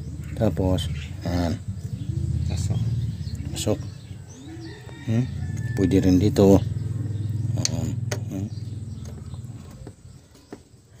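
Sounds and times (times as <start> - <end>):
low engine-like hum: 0.0 - 10.5.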